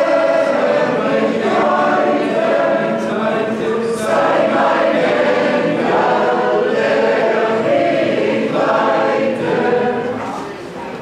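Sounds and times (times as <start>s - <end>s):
choir singing a hymn: 0.0s - 10.5s.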